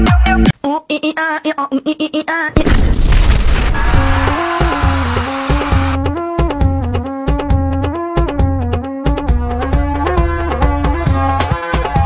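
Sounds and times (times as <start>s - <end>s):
loud boom sound effect: 2.6s - 4.4s.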